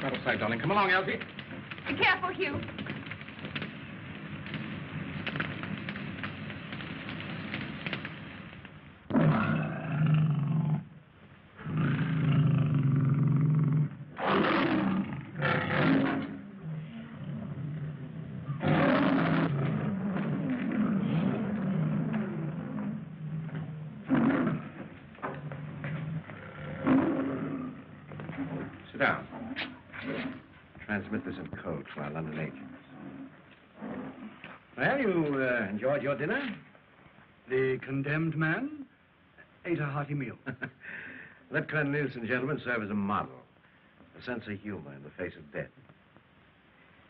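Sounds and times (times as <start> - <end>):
faint crackling: 0.0 - 37.5
lion roaring: 9.1 - 10.9, 11.6 - 30.5, 32.2 - 34.6.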